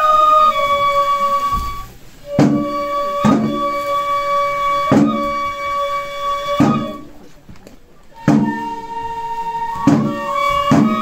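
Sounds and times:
bamboo flute long notes: 0.0s - 7.4s, 8.0s - 11.0s
heavy drum thumps: 1.5s - 3.8s, 4.8s - 5.4s, 6.5s - 7.0s, 8.2s - 8.8s, 9.7s - 11.0s.

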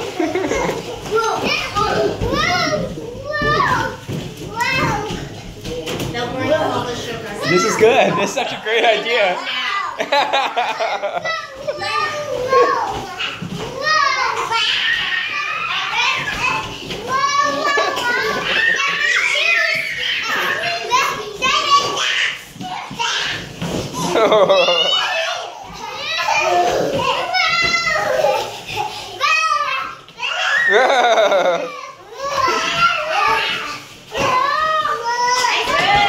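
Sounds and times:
children chattering and calling out: 0.0s - 36.0s.

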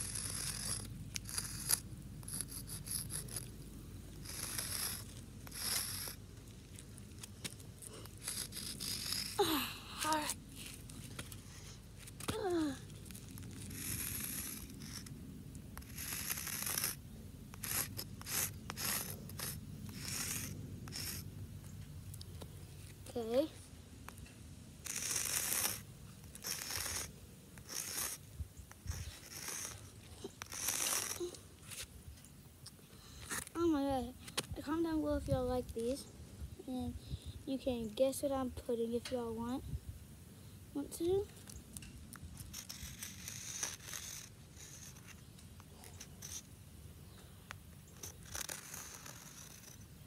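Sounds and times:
chalk scraping on concrete: 0.0s - 15.2s, 15.8s - 21.3s, 24.8s - 31.9s, 33.2s - 36.1s, 42.4s - 46.5s, 47.9s - 49.9s.

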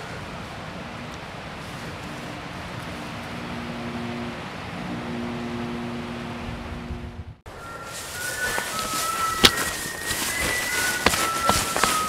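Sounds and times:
steady rushing noise: 0.0s - 12.0s
low held drone tones: 2.0s - 12.0s.

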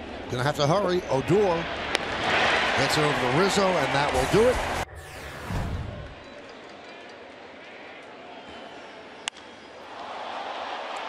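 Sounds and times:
transition whoosh: 4.8s - 6.3s.

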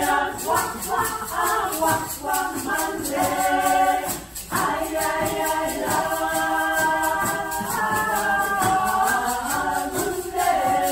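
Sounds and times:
steady high rattle: 0.0s - 10.9s
women singing in harmony: 0.0s - 10.9s.

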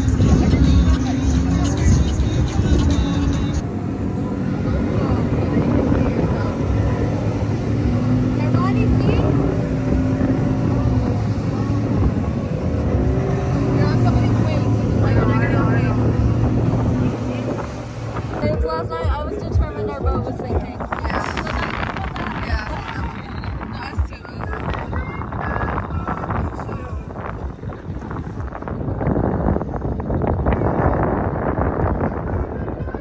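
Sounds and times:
music: 0.0s - 3.6s, 18.5s - 29.0s
voices: 0.0s - 31.0s
boat motor drone: 0.0s - 33.0s
wind on microphone: 0.0s - 33.0s.

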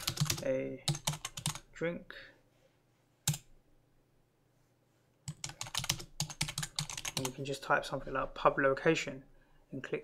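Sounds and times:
computer keyboard typing: 0.0s - 1.7s, 3.3s - 3.5s, 5.3s - 7.4s.

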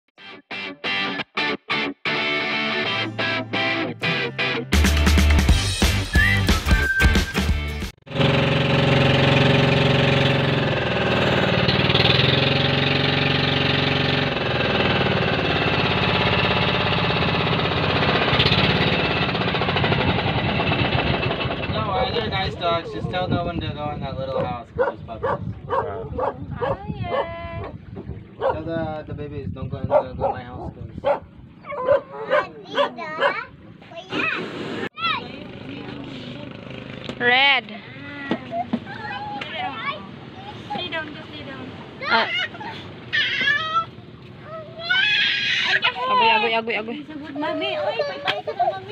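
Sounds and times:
boat engine chugging: 8.1s - 23.0s, 24.8s - 28.6s
dog barking: 24.8s - 27.8s, 28.4s - 28.6s, 29.9s - 33.5s.

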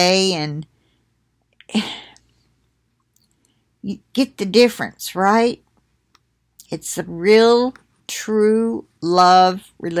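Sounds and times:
woman speaking: 0.0s - 0.7s, 1.6s - 2.2s, 3.8s - 5.7s, 6.6s - 10.0s.

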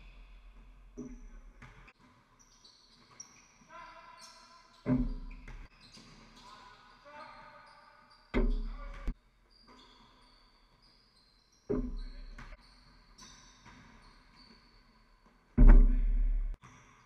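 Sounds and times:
basketball thuds: 8.4s - 9.1s, 11.7s - 12.6s, 15.6s - 16.6s.

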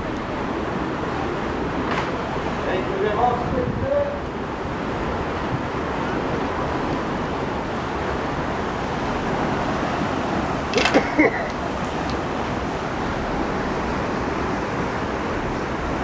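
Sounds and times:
steady rushing outdoor noise: 0.0s - 16.0s.

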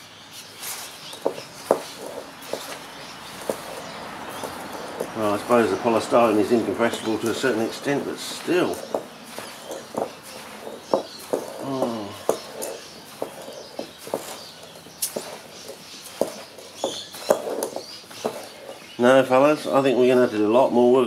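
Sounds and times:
grains scraping in glass bowl: 0.7s - 19.0s.

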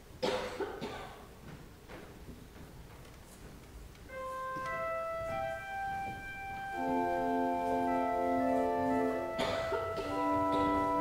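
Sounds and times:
person coughing: 0.2s - 1.3s, 9.3s - 11.0s.

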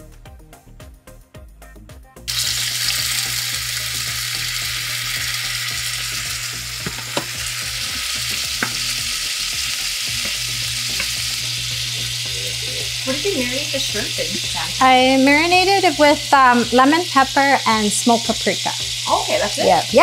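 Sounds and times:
shrimp sizzling in oil: 2.3s - 20.0s.

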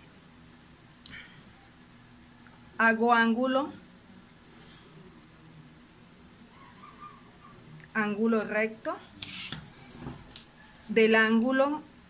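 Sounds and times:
plastic ruler sliding on paper: 9.2s - 10.2s
plastic scraping on paper: 9.2s - 10.5s.

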